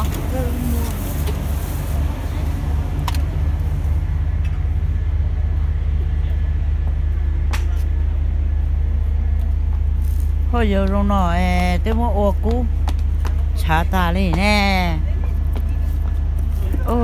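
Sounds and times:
low motor hum: 0:00.0 - 0:17.0.

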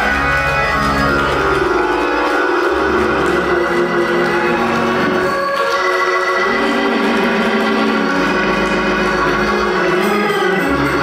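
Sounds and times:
church organ chords: 0:00.0 - 0:11.0
low bass organ note: 0:06.4 - 0:10.0.

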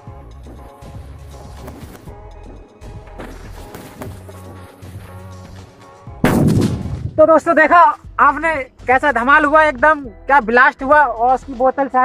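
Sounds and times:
firecracker bang: 0:06.2 - 0:07.3.

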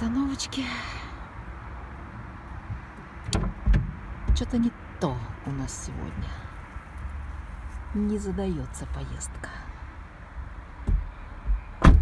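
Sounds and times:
heavy thump: 0:10.8 - 0:12.0.

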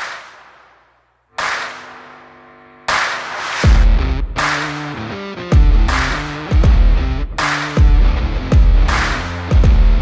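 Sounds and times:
sharp noisy hit: 0:02.9 - 0:04.0
deep bass kicks: 0:03.6 - 0:04.4, 0:05.6 - 0:10.0.

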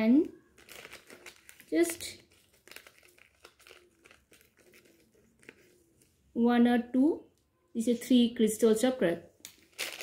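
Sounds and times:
plastic packet crinkling: 0:00.2 - 0:05.8, 0:09.5 - 0:10.0.

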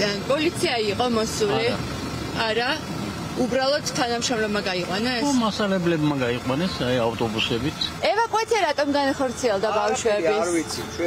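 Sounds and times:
people talking: 0:00.0 - 0:01.8, 0:02.4 - 0:11.0.

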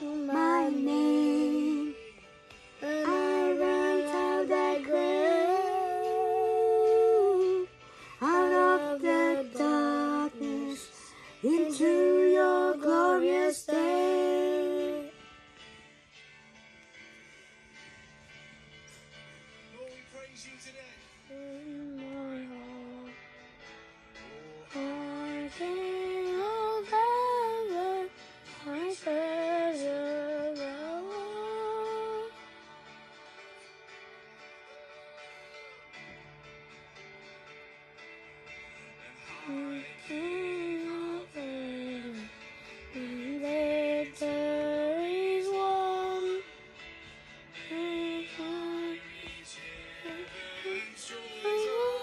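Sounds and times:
high voice singing slow melody: 0:00.0 - 0:15.2, 0:21.2 - 0:23.4, 0:24.2 - 0:35.9, 0:39.0 - 0:46.7, 0:47.6 - 0:52.0.

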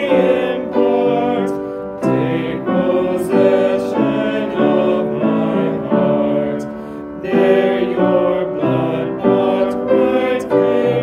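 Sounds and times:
group singing a hymn in parts: 0:00.0 - 0:11.0
upright piano chords: 0:00.0 - 0:11.0.

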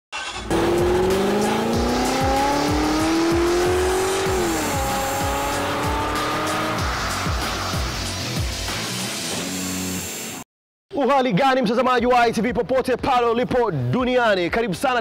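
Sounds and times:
car engine revving: 0:00.2 - 0:08.6
music with drum beat: 0:01.1 - 0:09.0.

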